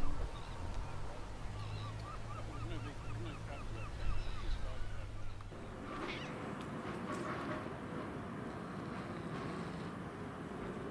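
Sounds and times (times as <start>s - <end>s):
wind rumble: 0.0s - 10.9s.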